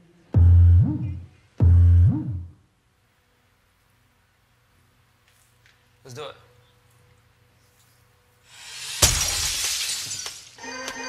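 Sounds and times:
glass shattering: 0:08.5 - 0:10.6.

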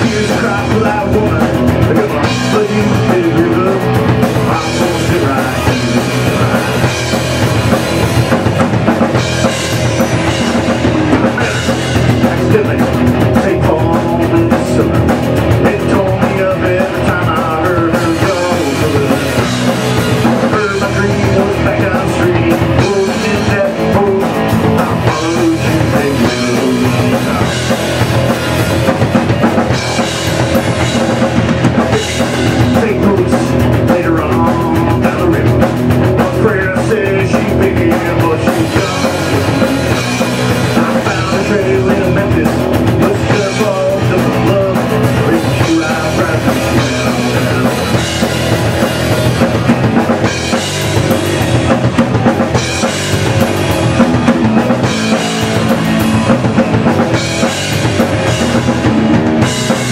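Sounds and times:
drum kit: 0:00.0 - 0:59.9
electric guitars: 0:00.0 - 0:59.9.

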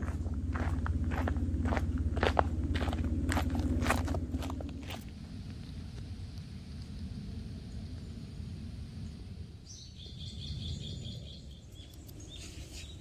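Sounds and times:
footsteps crunching on gravel: 0:00.0 - 0:05.2
steady low hum: 0:00.0 - 0:13.0.

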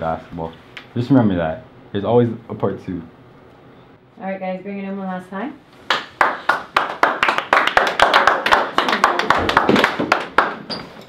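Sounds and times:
people clapping and slapping hands: 0:05.9 - 0:10.7.

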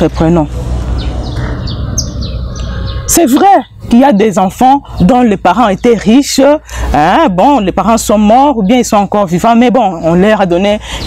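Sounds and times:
small bird chirping: 0:00.9 - 0:06.8.

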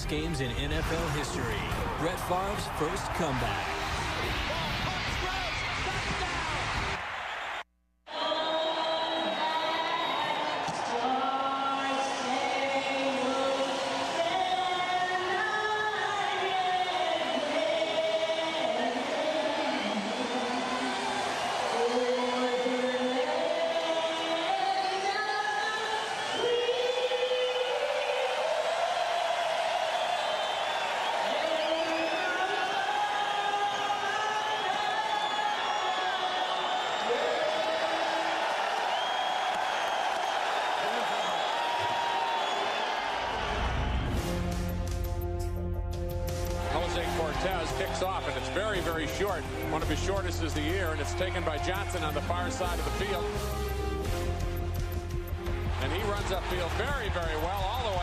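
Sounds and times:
stadium crowd noise: 0:00.0 - 0:58.0.

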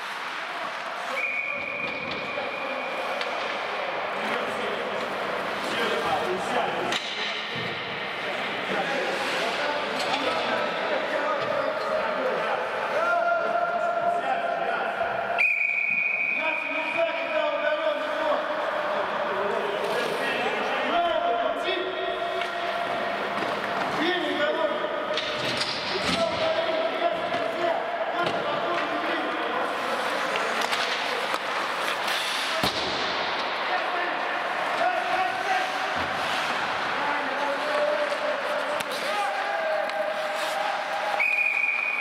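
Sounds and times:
players' voices and shouts: 0:00.0 - 0:42.0.

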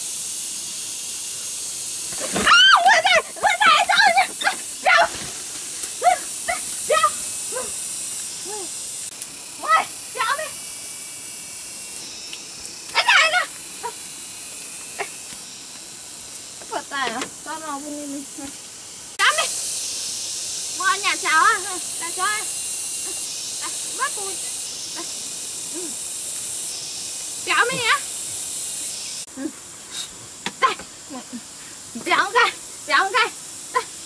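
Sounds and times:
high-pitched hiss: 0:00.0 - 0:34.0.

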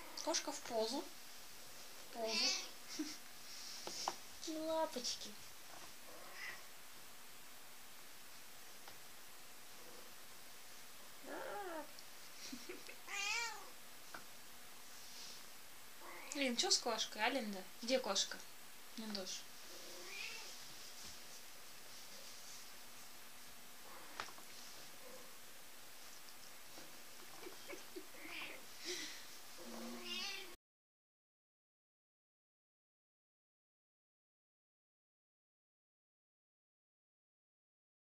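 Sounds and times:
cat meowing: 0:06.3 - 0:06.6, 0:13.1 - 0:13.7, 0:20.0 - 0:20.5, 0:29.8 - 0:30.6.

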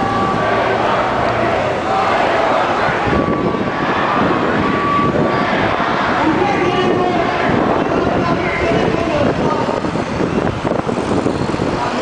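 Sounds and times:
crowd of demonstrators voices: 0:00.0 - 0:12.0
passing street traffic: 0:00.0 - 0:12.0.

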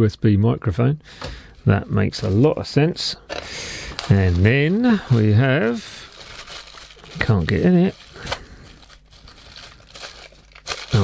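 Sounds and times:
bubble wrap crinkling: 0:03.4 - 0:11.0.

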